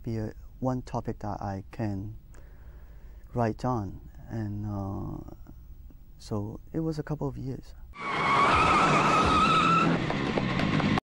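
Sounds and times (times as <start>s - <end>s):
car tyres screeching: 8.0s - 11.0s.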